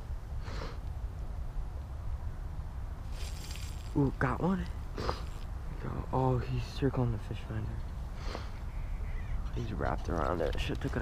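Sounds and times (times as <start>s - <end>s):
rustling hiss of fishing reel: 3.1s - 3.9s, 5.0s - 5.5s.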